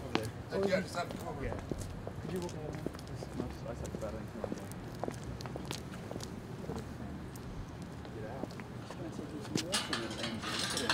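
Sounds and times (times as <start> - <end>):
footsteps on pavement: 0.0 - 9.8.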